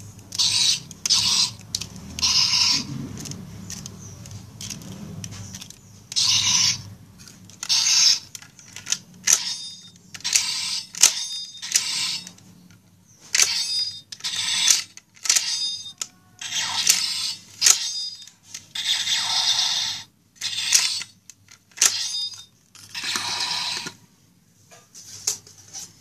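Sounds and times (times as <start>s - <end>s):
squeaky plastic scrape: 0.3s - 24.0s.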